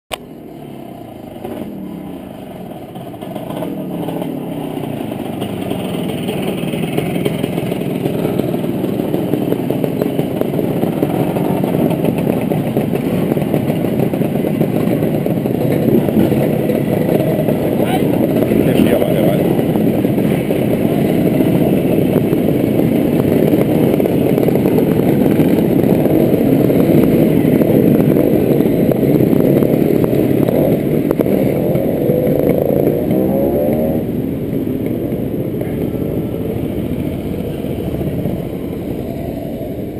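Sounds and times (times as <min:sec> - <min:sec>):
motorcycles riding past: 0:00.2 - 0:39.9.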